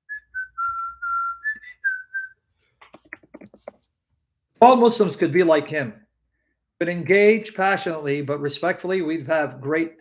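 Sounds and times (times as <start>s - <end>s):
man whistling a tune: 0.0s - 2.4s.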